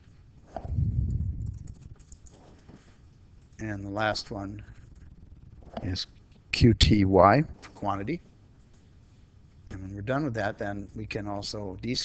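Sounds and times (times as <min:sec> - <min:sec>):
keystrokes on computer keyboard: 0:01.1 - 0:02.6.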